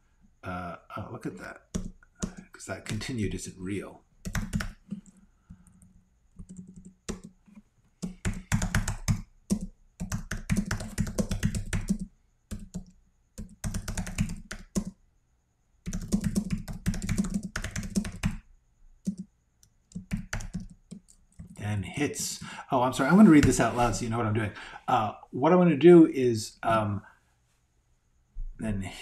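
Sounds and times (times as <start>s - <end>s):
typing on a computer keyboard: 1.7s - 2.5s, 4.2s - 15.0s, 15.8s - 18.4s, 19.0s - 21.6s.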